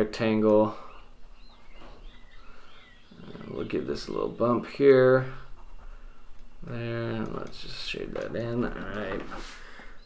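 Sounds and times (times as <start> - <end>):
faint bird chirps: 0.6 - 6.8.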